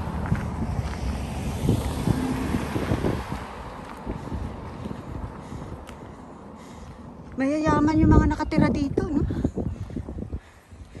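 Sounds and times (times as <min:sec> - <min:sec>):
vehicles driving past: 0:00.0 - 0:09.0
wind buffeting microphone: 0:00.0 - 0:11.0.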